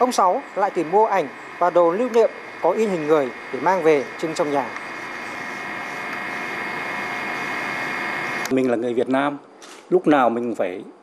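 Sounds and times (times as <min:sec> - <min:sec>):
rushing engine-like drone: 0:00.0 - 0:08.5.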